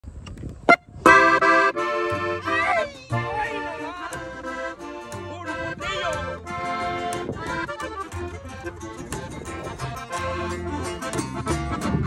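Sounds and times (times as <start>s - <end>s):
accordion chords: 0.7s - 12.0s.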